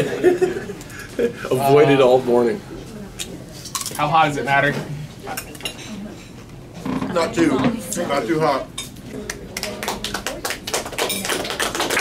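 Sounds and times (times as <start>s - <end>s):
quick sharp hand claps: 9.3s - 12.0s.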